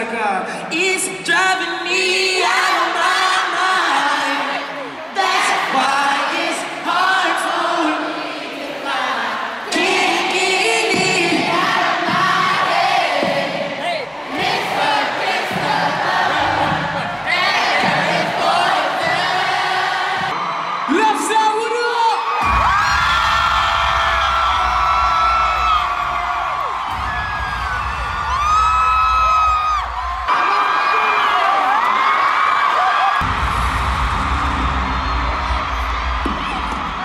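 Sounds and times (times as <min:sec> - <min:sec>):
crowd cheering and singing: 0:00.0 - 0:37.0.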